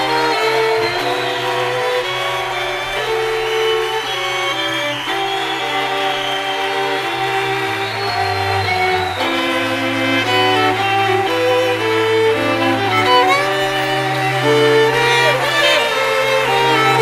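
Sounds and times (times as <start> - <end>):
string quartet playing: 0.0 - 17.0.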